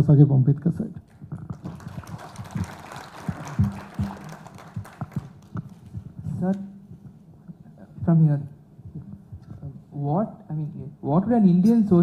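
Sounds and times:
audience applauding: 1.1s - 6.2s.

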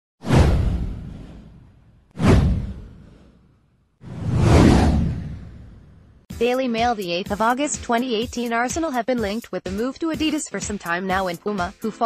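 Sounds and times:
cinematic whoosh with low tail: 0.2s - 3.4s, 4.0s - 6.2s.

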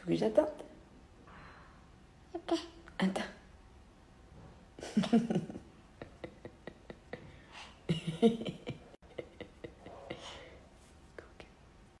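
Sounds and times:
soft breathy laughter: 4.8s - 10.9s.

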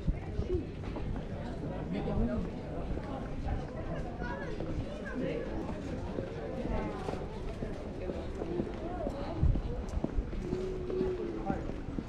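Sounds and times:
passers-by talking: 0.0s - 12.0s.

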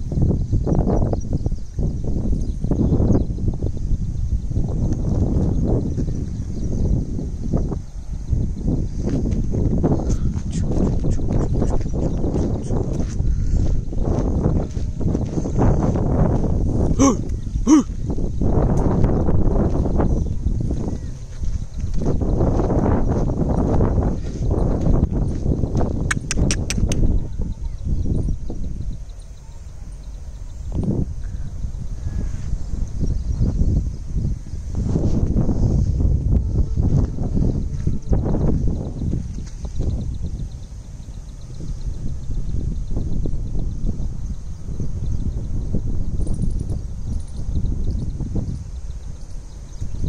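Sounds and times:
wind buffeting microphone: 0.0s - 50.0s
sharp clicks: 26.1s - 27.1s.

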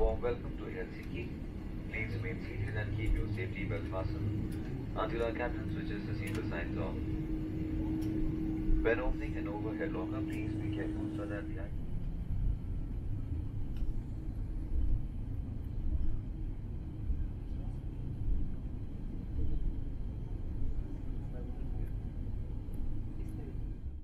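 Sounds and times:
airliner cabin rumble while taxiing: 0.0s - 24.0s.

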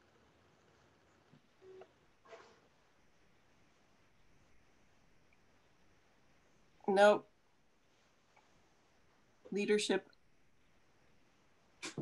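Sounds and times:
faint tone: 1.6s - 2.6s.

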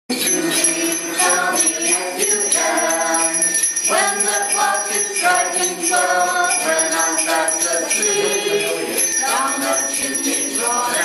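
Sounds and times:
group singing a christmas song: 0.1s - 11.0s
sleigh bells jingling: 0.1s - 11.0s.

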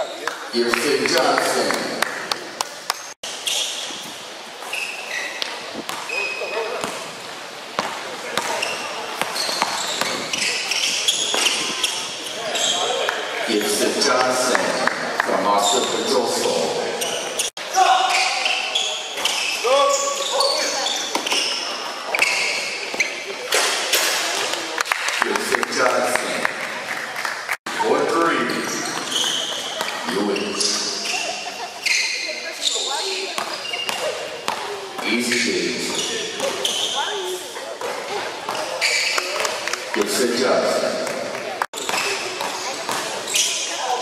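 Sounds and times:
sneakers squeaking: 2.5s - 16.2s, 16.8s - 24.6s, 28.3s - 44.0s.

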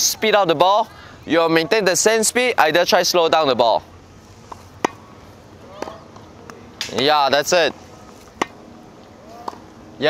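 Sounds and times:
tennis ball struck by racket: 4.5s - 5.1s, 5.7s - 7.1s, 8.0s - 8.7s, 9.3s - 9.7s.

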